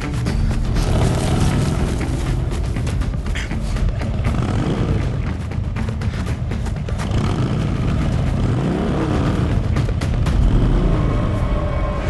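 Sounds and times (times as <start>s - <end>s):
vehicle engine revving: 0.7s - 12.0s.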